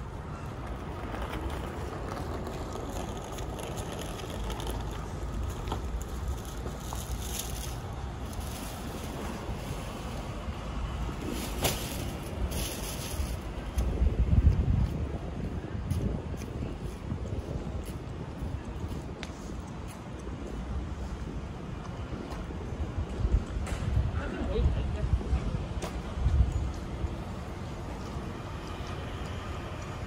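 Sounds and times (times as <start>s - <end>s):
steady low street rumble: 0.0s - 30.0s
wind buffeting microphone: 0.0s - 30.0s.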